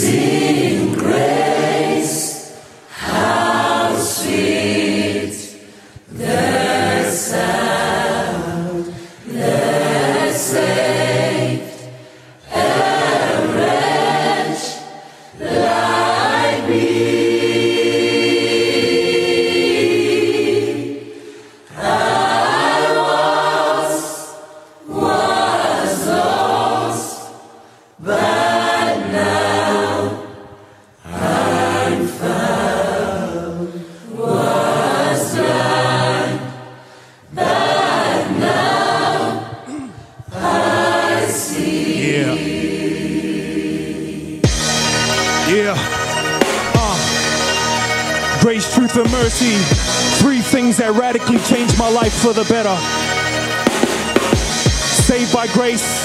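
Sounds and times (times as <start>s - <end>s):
choir singing gospel: 0.0s - 56.0s.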